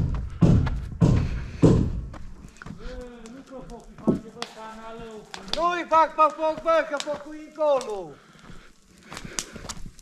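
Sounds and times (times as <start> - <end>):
sharp fire pops: 0.0 - 8.2, 8.9 - 10.0
cooking fire crackling: 1.4 - 10.0.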